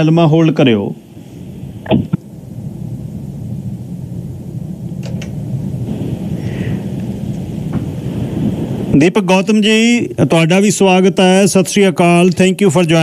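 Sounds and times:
telephone line hiss: 5.0s - 11.3s.

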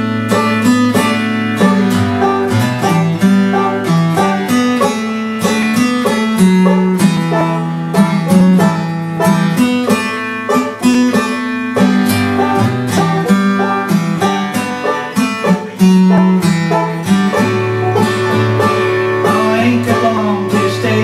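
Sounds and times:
acoustic guitar: 0.0s - 21.0s
banjo: 0.0s - 21.0s
bass line: 0.0s - 21.0s.

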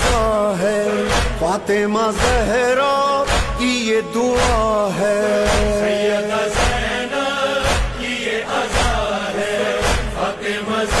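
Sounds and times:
heavy beat: 0.0s - 11.0s
voices chanting a lament: 0.0s - 11.0s.

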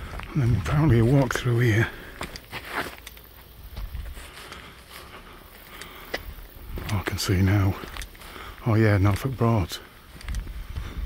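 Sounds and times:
footsteps on grassy dirt path: 0.0s - 11.0s.

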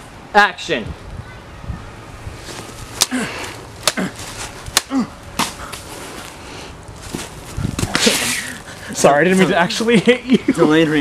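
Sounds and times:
person grunting: 3.0s - 4.2s, 4.9s - 5.2s.

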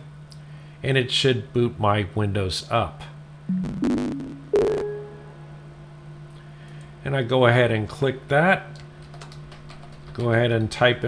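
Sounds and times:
low steady hum: 0.0s - 11.0s
electronic startup chime: 3.5s - 5.4s.

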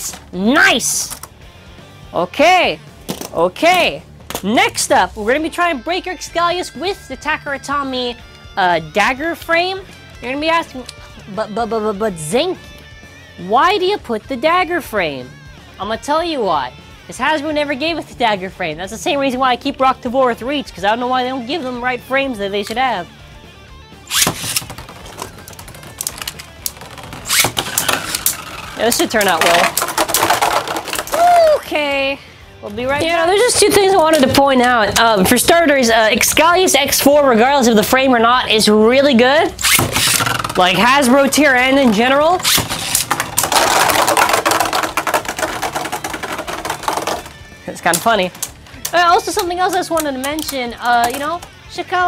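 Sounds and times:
spinning top clicking on plastic: 24.1s - 31.2s, 42.4s - 51.5s.

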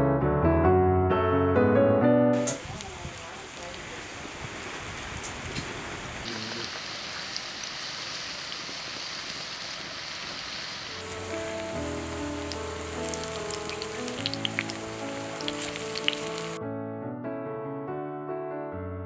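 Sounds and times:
soft piano music: 0.0s - 2.6s, 11.0s - 19.0s
frying sizzle: 2.4s - 16.6s
oil crackles: 2.5s - 16.6s.

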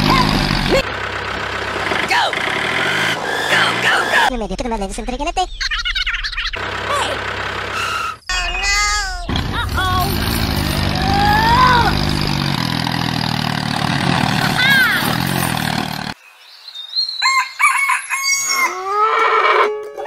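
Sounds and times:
tractor engine rattling: 0.0s - 4.3s, 6.6s - 8.2s, 8.8s - 16.2s
farm animal calls: 6.2s - 8.4s
cartoon voice exclamations: 8.3s - 10.1s, 11.0s - 12.0s
rooster crowing: 17.2s - 19.6s.

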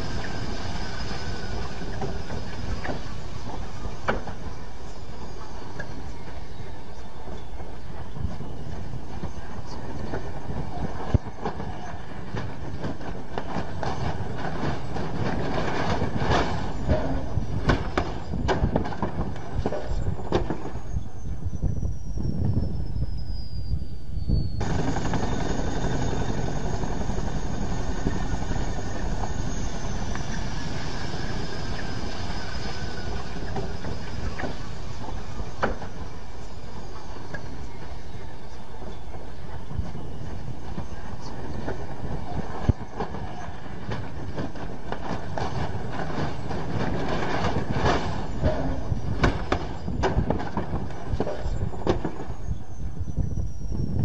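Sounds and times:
helicopter rotor chop: 0.0s - 20.9s, 24.6s - 54.0s
falling whine: 0.0s - 54.0s.

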